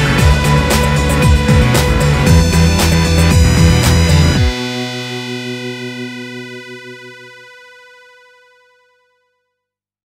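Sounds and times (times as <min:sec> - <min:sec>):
held music chord ringing: 0:00.4 - 0:07.4.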